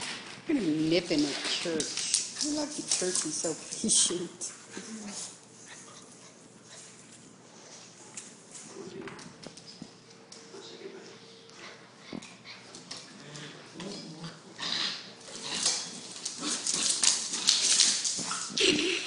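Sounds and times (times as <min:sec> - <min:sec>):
paws clicking on tiles: 0:01.1 - 0:10.4, 0:11.5 - 0:14.4, 0:15.2 - 0:19.0.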